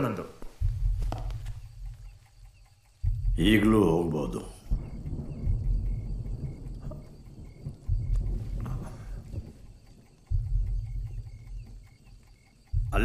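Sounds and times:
cricket chirps: 0.0s - 13.0s
deep low rumble: 0.5s - 13.0s.

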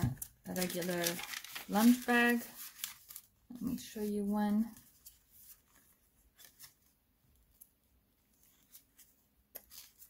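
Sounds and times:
paper pages rustling: 0.2s - 10.0s.

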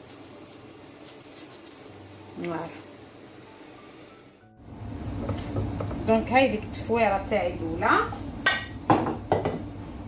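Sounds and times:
salt pouring into a pot: 0.0s - 4.3s.

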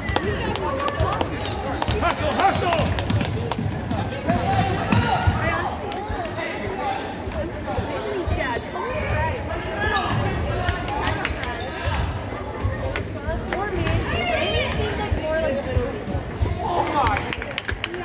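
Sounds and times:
voices of players: 0.0s - 18.0s.

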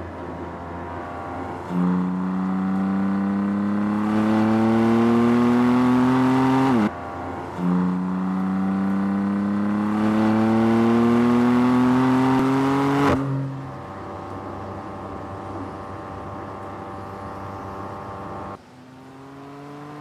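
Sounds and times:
car engine accelerating hard: 0.0s - 20.0s.

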